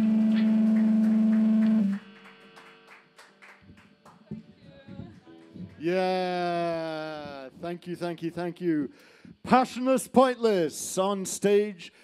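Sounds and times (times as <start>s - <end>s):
electric instrument low note: 0.0s - 7.6s.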